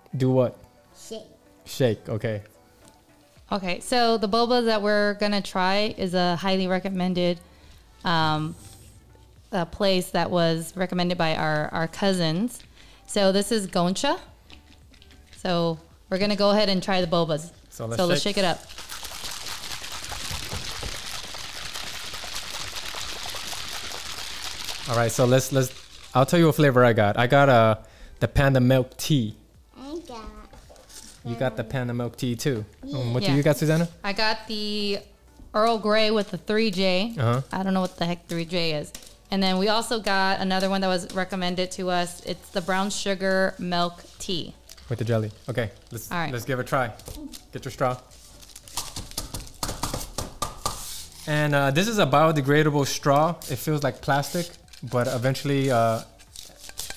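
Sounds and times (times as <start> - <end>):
cups of drink being shaken: 14.3 - 15.6, 18.0 - 27.0, 36.2 - 56.9
wrappers crinkling and tearing: 17.6 - 27.5, 30.5 - 31.2, 35.8 - 56.9.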